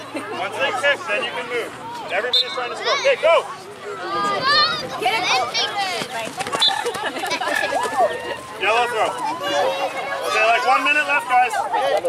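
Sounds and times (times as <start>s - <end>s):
children calling out and chattering: 0.0s - 12.0s.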